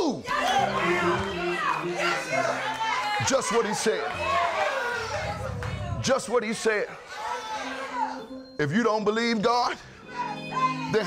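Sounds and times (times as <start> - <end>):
congregation calling out responses: 0.0 - 11.0.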